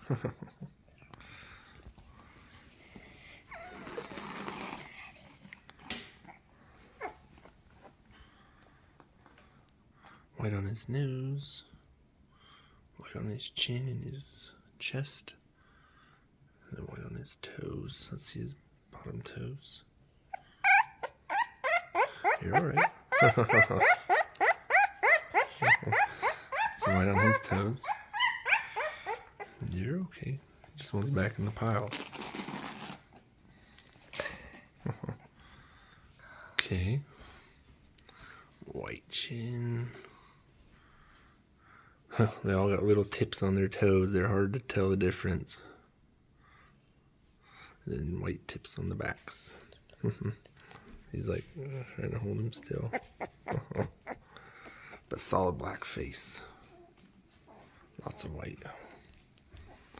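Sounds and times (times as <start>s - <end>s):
puppy crying with short squeals: 20.3s - 29.6s.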